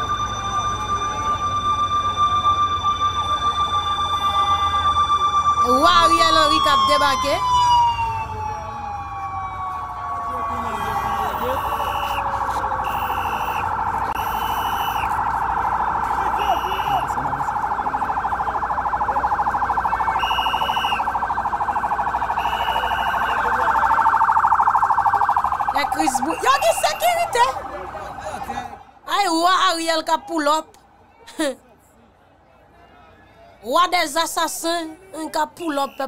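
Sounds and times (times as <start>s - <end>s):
short high-pitched siren blasts: 0.0s - 28.5s
police siren warble: 0.0s - 30.4s
police siren wail: 0.0s - 30.6s.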